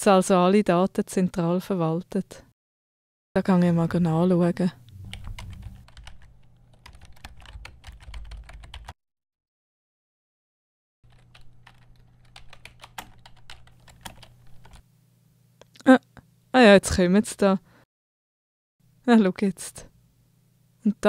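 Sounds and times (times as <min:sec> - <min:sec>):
low steady hum: 0:03.4 - 0:08.6
laptop keyboard typing: 0:05.0 - 0:09.0, 0:11.1 - 0:14.8.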